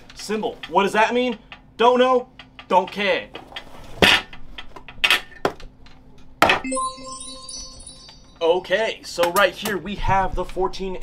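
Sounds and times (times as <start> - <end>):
shimmering chime sound effect: 6.6 - 9.0.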